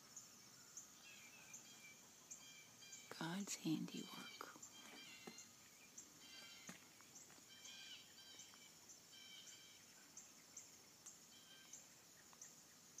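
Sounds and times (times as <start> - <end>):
birds chirping: 0.0 - 13.0
thin high insect chirp: 0.0 - 13.0.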